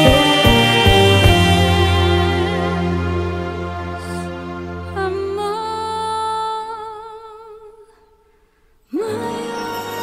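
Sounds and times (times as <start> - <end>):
song backing music: 0.0 - 6.7
woman singing long note: 0.0 - 7.8.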